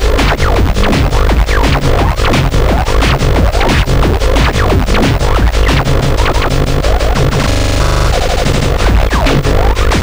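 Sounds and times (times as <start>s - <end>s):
distorted electronic beat: 0.0s - 10.0s
rapid repeating buzz with blips: 0.0s - 10.0s.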